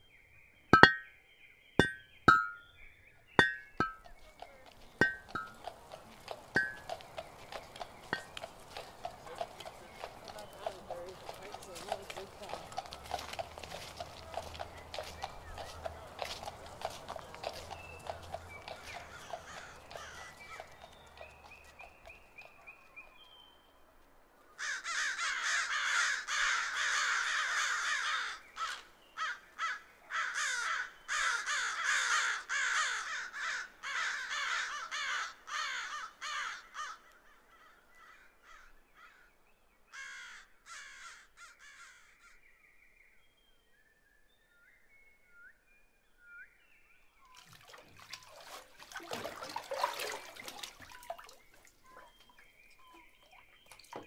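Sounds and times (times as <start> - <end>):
crows cawing: 18.6 - 20.8, 24.6 - 39.3, 39.9 - 42.4.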